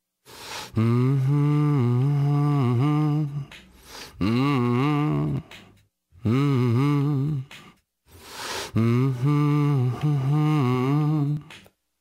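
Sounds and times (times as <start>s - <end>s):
low voice humming: 0.7s - 3.5s, 4.1s - 5.6s, 6.2s - 7.7s, 8.7s - 11.5s.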